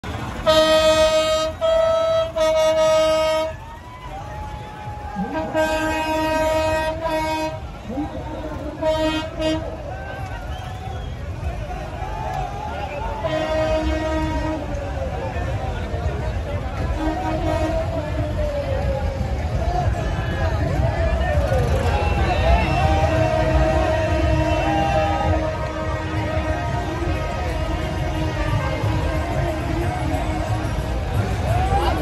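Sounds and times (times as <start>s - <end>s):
street crowd chatter: 0.0s - 32.0s
vehicle horn: 0.4s - 3.6s, 5.2s - 9.7s, 13.2s - 14.8s, 17.0s - 18.0s, 22.0s - 30.8s
vehicle horn blasts: 0.4s - 3.6s, 5.2s - 7.6s, 8.5s - 9.7s, 13.2s - 14.8s.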